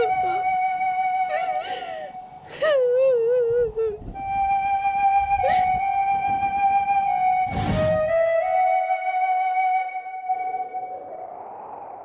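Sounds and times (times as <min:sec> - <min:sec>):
held flute note: 0:04.1 - 0:11.2.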